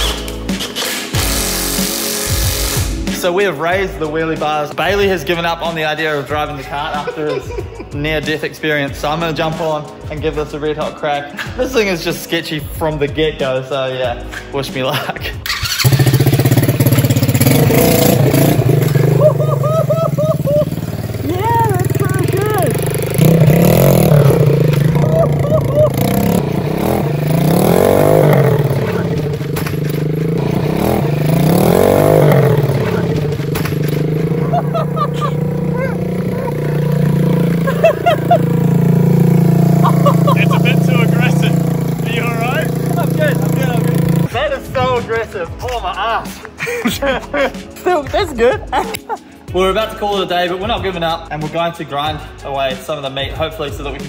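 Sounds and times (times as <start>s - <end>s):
go-kart engine revving: 0.0s - 3.1s, 15.4s - 44.3s.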